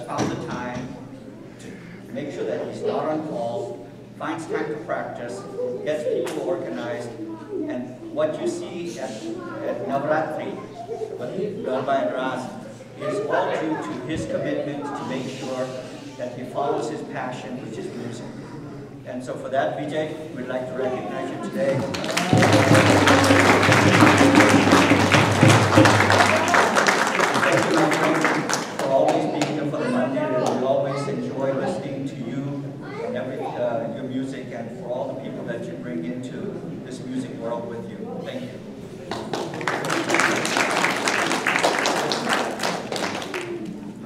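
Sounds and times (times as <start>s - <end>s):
audience applauding: 21.7s - 29.6s, 39.1s - 43.8s.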